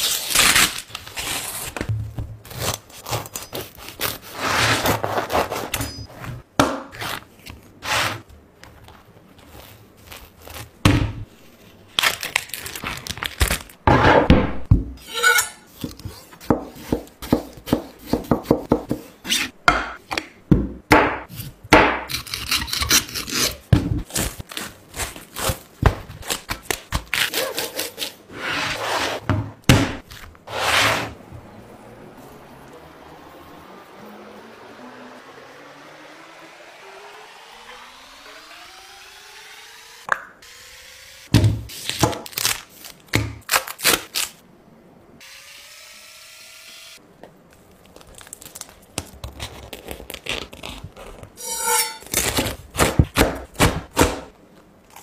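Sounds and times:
knife sawing through bread: 2.5s - 5.8s
knife slicing tomato: 21.3s - 29.1s.

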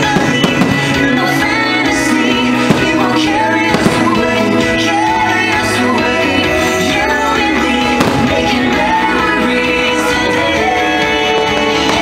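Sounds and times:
music with singing: 0.0s - 12.0s.

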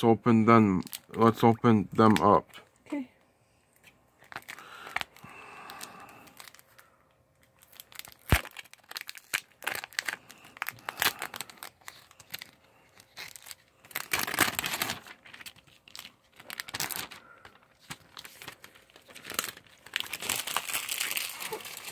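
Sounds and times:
plastic bags crinkling: 4.2s - 21.9s.

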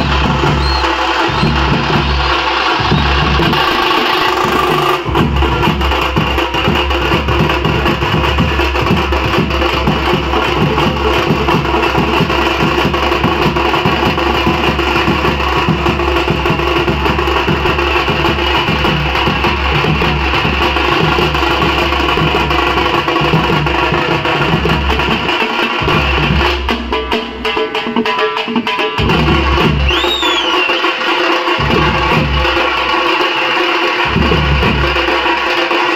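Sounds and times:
drum band playing: 0.0s - 35.9s.

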